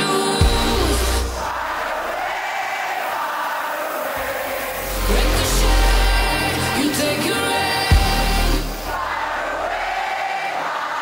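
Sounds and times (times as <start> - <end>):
sustained voices and synth: 0.0 - 10.0.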